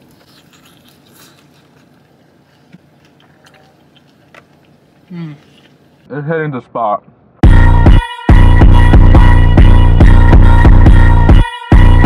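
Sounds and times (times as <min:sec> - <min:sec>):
crackles and clicks of biting: 0:00.0 - 0:05.8
person chewing chicken wing: 0:00.0 - 0:05.8.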